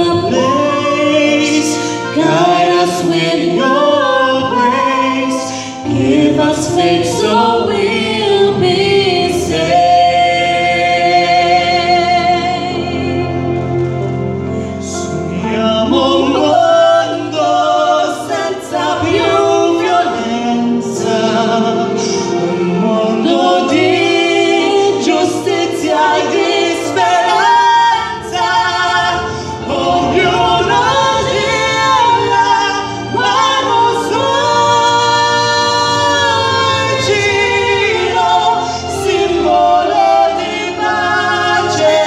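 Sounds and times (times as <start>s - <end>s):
woman and man singing duet: 0.0s - 13.5s, 14.8s - 42.0s
instrumental accompaniment: 0.0s - 42.0s.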